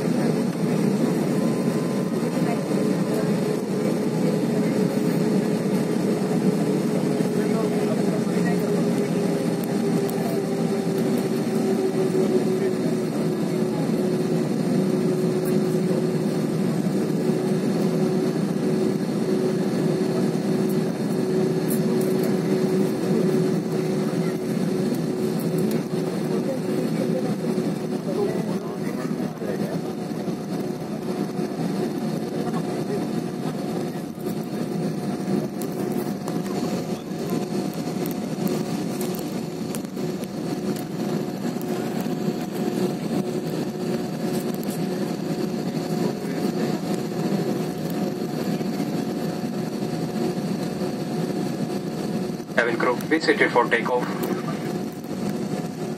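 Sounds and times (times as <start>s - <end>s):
higher engine tone: 0.0s - 46.3s
airliner cabin engine hum: 0.0s - 55.9s.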